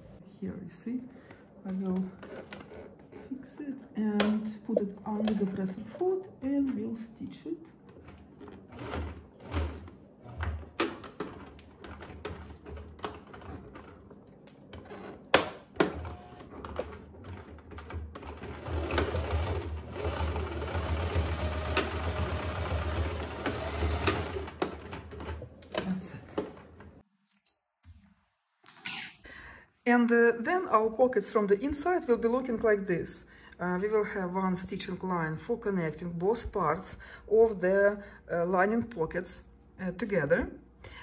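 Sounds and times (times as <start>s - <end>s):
electric sewing machine stitching: 8.0s - 13.9s, 14.8s - 25.5s.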